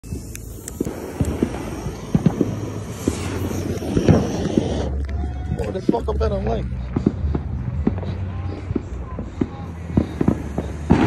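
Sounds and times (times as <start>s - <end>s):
fireworks popping and thudding: 0.0s - 11.0s
low rumble: 0.0s - 11.0s.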